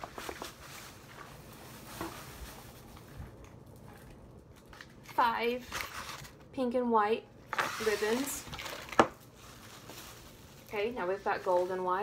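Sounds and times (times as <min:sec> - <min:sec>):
packaging rustling: 0:07.5 - 0:12.0.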